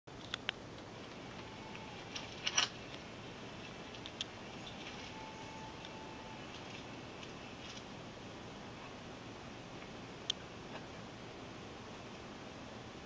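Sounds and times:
clicks and rustling: 0.1s - 3.0s
faint steady hiss: 0.1s - 13.0s.

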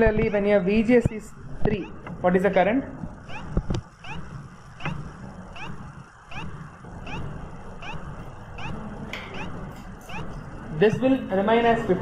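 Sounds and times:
high rising squeak: 3.2s - 10.4s.

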